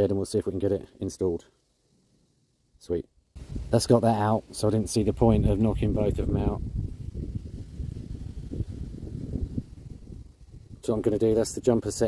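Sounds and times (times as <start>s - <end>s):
wind buffeting microphone: 3.4s - 4.0s, 4.7s - 12.0s.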